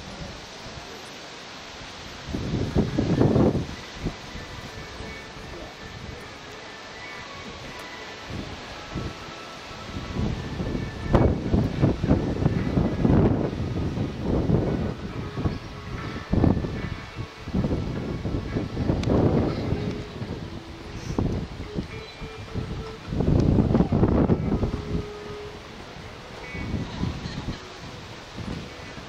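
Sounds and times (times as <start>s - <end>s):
wind buffeting microphone: 1.7s - 29.0s.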